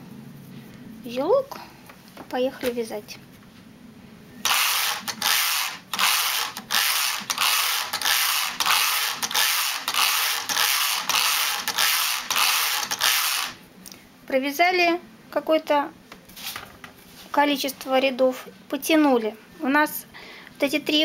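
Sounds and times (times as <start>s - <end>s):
knitting machine carriage rattling scrape: 4.5s - 13.6s.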